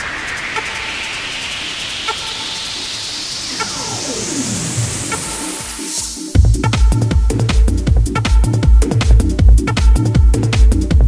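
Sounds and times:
falling pitch glide: 0.0 - 6.2
rising noise sweep: 0.0 - 6.4.

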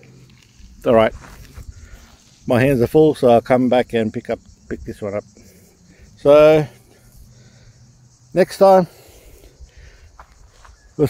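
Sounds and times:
footsteps on dry grass: 0.0 - 2.5, 10.1 - 11.0.

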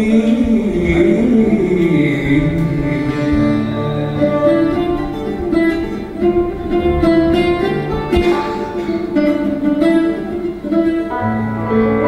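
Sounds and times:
plucked mandole melody: 0.0 - 12.0.

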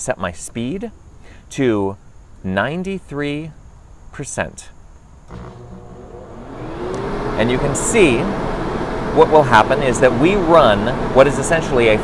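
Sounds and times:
fan whine: 5.2 - 12.0
blower fan rushing air: 5.3 - 12.0.

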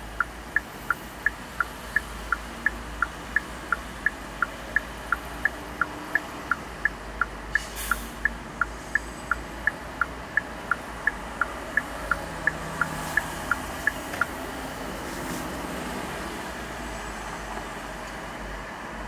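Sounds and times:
turn signal clicking: 0.0 - 14.4
road and engine rumble: 0.0 - 19.0.

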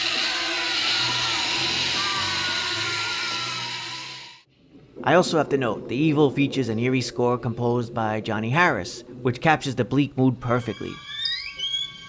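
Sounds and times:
eerie horror music: 0.0 - 4.5
faint gliding tones: 4.5 - 12.0.

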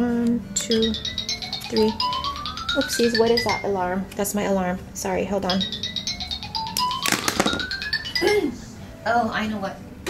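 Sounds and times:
alarm ringtone chiming notes: 0.6 - 4.0, 5.2 - 8.9.

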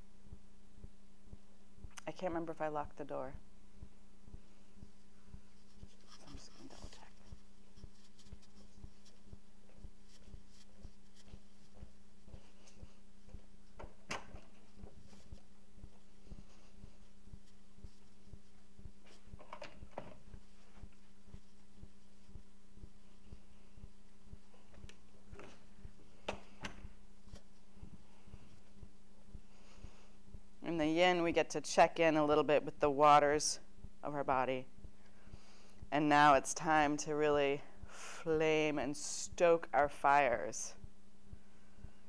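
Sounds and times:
faint low thumps: 0.0 - 8.0
steady low hum: 0.0 - 42.0
cloth and mat rustling: 4.8 - 28.8
footsteps on wooden floor: 8.3 - 17.4.

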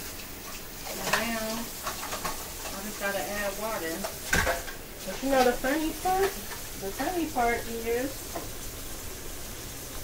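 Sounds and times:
sauce sizzling in a pot: 0.0 - 10.0
woman speaking: 1.0 - 1.7, 2.7 - 4.1, 5.0 - 8.2.

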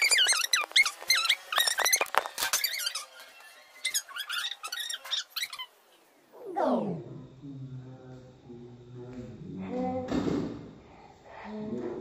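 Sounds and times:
high squeaky pitched-up chatter: 3.8 - 5.8.

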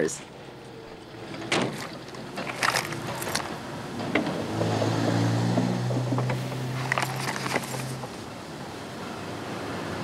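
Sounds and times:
car engine starting and droning: 0.5 - 10.0.

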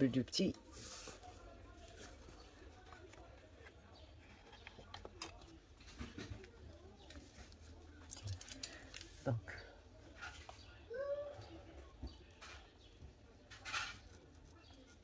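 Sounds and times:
distant child crying and babbling: 10.7 - 12.1.

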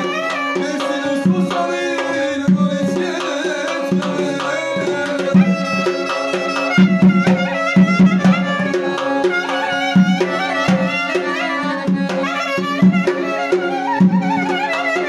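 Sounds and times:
accordion folk melody: 0.0 - 15.0.

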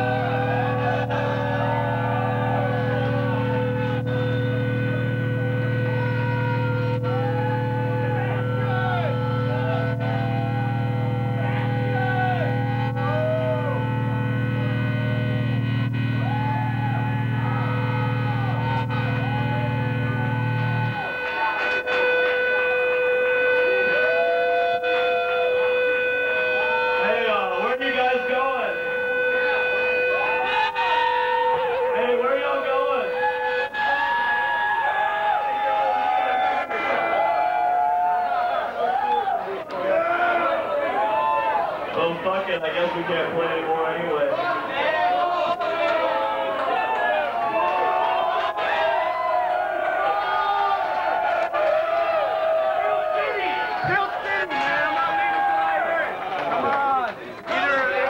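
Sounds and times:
low amp drone: 0.0 - 39.4
voices shouting: 0.0 - 43.3
whistling guitar amp feedback: 0.0 - 58.0.

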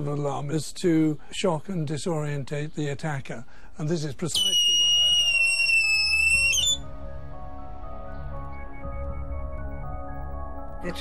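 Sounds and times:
soft background music: 0.0 - 11.0
attack alarm shrieking: 4.4 - 6.8.

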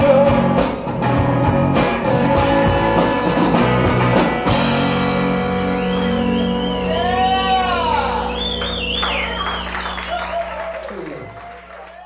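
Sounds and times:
bending electric guitar notes: 0.0 - 11.4
audience whooping and clapping: 5.7 - 12.0.

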